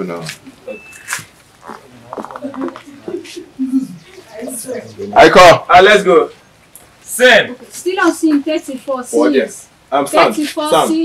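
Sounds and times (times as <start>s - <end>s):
indistinct voices: 0.0s - 6.3s.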